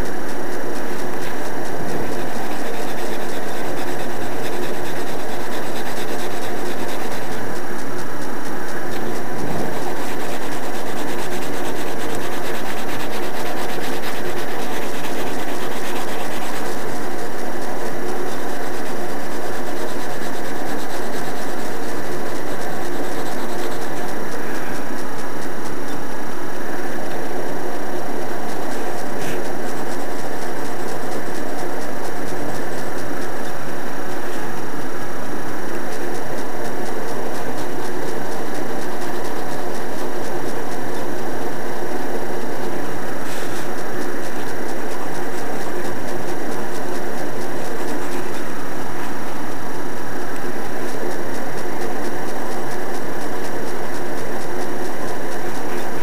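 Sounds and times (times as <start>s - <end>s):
faint hum: 0.0s - 56.0s
loud steady hiss: 0.0s - 56.0s
pencil scratching on paper: 0.7s - 25.2s, 26.9s - 33.3s, 42.0s - 49.4s.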